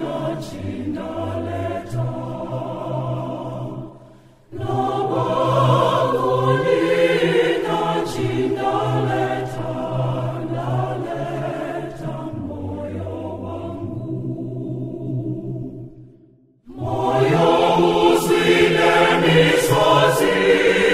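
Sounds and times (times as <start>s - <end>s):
church choir singing a hymn: 0.0s - 16.0s, 16.7s - 20.9s.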